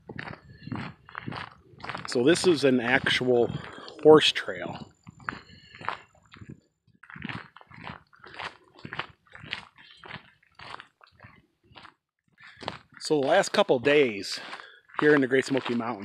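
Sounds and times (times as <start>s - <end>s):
footsteps crunching on gravel: 0.0s - 16.0s.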